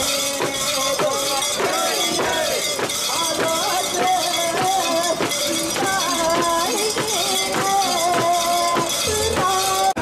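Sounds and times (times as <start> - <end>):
metal rings rattling and jangling: 0.0 - 10.0
people calling out together: 0.0 - 10.0.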